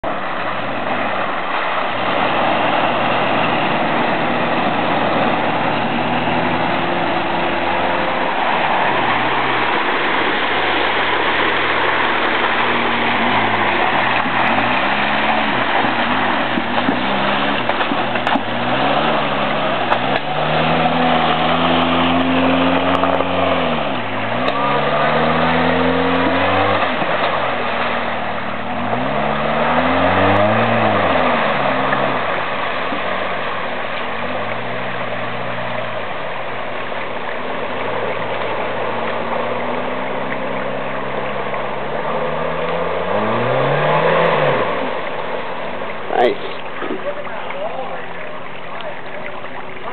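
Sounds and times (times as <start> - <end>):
car engine revving: 0.0 - 47.0
splashing through mud and water: 0.0 - 49.9.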